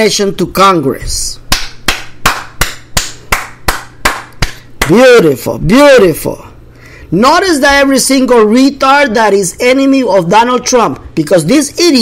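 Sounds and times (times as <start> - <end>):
person clapping hands: 1.5 - 5.0.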